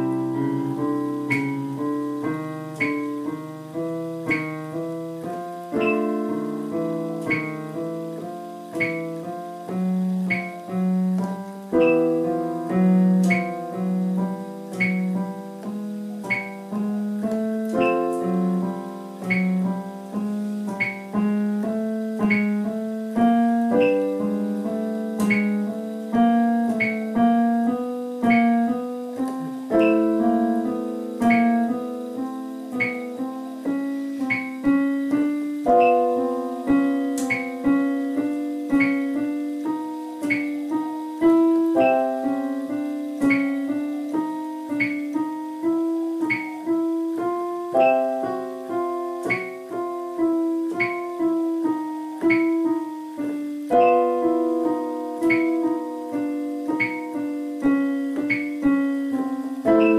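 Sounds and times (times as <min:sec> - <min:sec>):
digital piano chords: 0:00.0 - 0:59.9
metronome clicking: 0:01.2 - 0:03.4, 0:04.3 - 0:06.5, 0:10.2 - 0:18.5, 0:19.2 - 0:19.7, 0:20.6 - 0:21.3, 0:22.2 - 0:22.6, 0:23.6 - 0:24.4, 0:25.2 - 0:25.7, 0:26.5 - 0:27.3, 0:28.2 - 0:30.4, 0:31.2 - 0:31.9, 0:32.7 - 0:33.2, 0:34.2 - 0:37.8, 0:40.2 - 0:45.2, 0:46.2 - 0:46.7, 0:49.2 - 0:49.7, 0:52.2 - 0:52.8, 0:53.7 - 0:54.3, 0:55.2 - 0:58.8.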